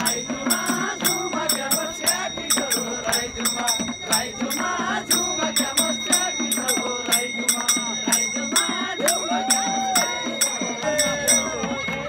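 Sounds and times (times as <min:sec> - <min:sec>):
group singing: 0:00.0 - 0:12.0.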